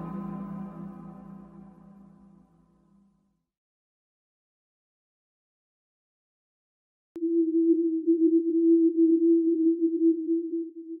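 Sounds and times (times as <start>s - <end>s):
low electronic tone: 0.0s - 2.4s.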